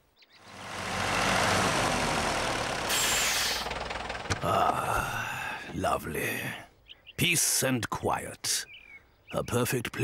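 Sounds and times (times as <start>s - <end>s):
tractor engine running: 0.4s - 5.7s
short hiss: 2.8s - 3.8s.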